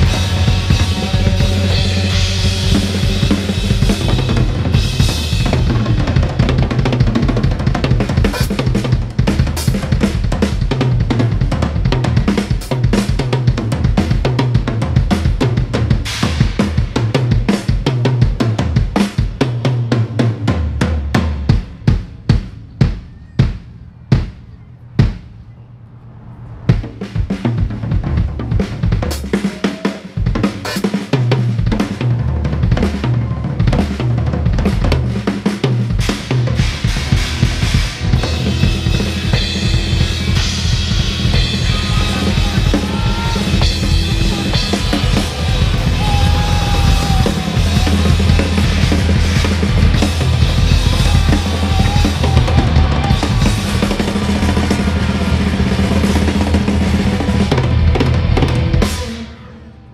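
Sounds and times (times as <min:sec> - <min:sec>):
drum kit solo: 0:00.0 - 0:25.3, 0:26.7 - 0:59.5
cymbal crashes: 0:36.5 - 0:51.7.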